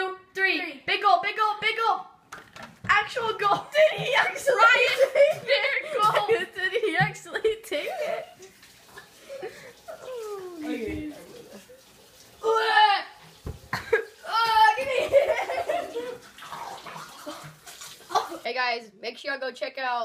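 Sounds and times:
boys shouting and laughing: 0:02.9 - 0:08.4, 0:09.3 - 0:11.6, 0:13.8 - 0:16.2
boys groaning: 0:09.4 - 0:11.6
tap running into sink: 0:13.2 - 0:14.0.

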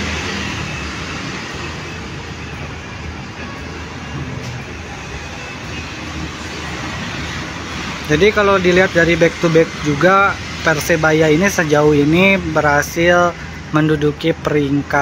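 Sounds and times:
passing cars and motorbikes: 0:00.0 - 0:15.0.

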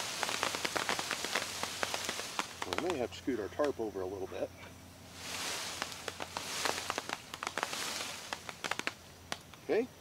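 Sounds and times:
cherries ticking onto a tarp: 0:00.0 - 0:03.8, 0:05.3 - 0:09.7
leaves rustling: 0:00.0 - 0:09.8.

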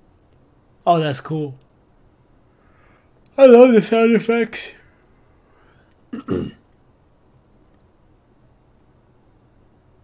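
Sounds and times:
man clearing his throat: 0:06.1 - 0:06.7.

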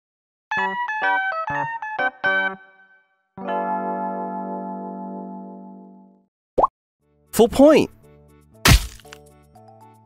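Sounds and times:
sharp cracking impact: 0:08.7 - 0:09.2.

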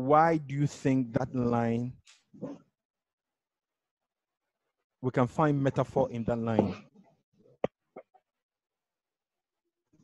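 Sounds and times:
man's voice: 0:00.0 - 0:02.0, 0:05.0 - 0:06.8.

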